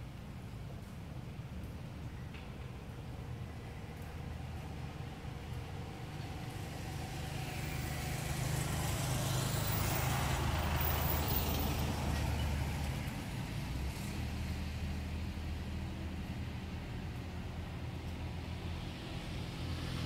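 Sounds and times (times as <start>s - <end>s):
vehicle passing on road: 4.2s - 20.0s.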